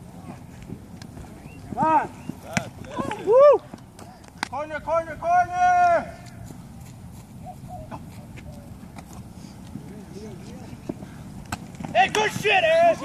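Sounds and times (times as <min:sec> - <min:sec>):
low background noise: 0:00.0 - 0:13.0
distant players shouting: 0:00.1 - 0:06.6, 0:09.7 - 0:13.0.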